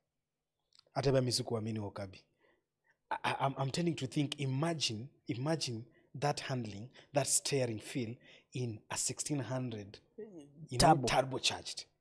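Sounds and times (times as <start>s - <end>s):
man speaking: 1.0s - 2.2s, 3.1s - 11.9s.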